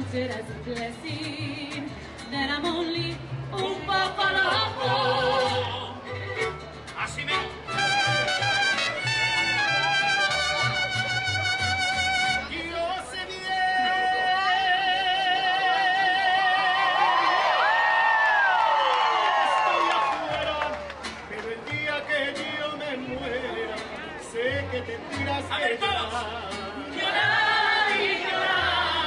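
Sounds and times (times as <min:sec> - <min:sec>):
bass line: 0:00.0 - 0:13.1
crowd cheering and whooping: 0:16.4 - 0:21.0.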